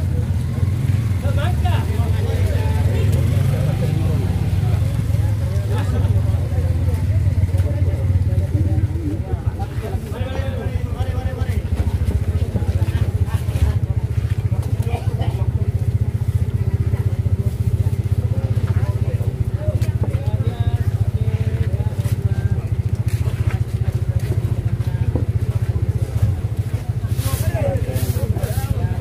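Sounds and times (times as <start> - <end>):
engine idling rumble: 0.0 - 29.0
faint background voices: 0.0 - 29.0.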